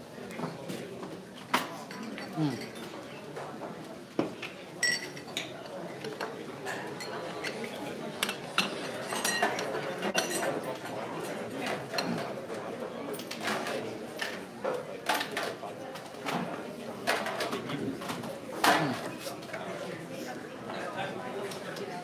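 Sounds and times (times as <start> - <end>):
background voices chattering: 0.0 - 22.0.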